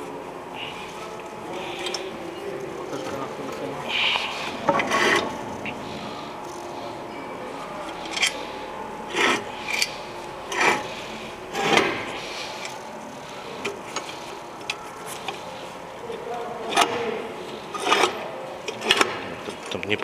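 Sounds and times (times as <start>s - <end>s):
metallic scrapes and clunks: 4.6s - 5.4s, 9.1s - 12.7s.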